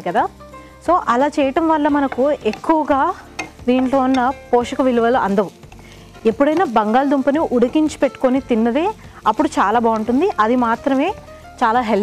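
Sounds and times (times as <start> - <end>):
woman talking: 0.0 - 5.6, 6.2 - 12.0
light sizzle: 0.0 - 12.0
spatula stirring in a frying pan: 1.9 - 11.0.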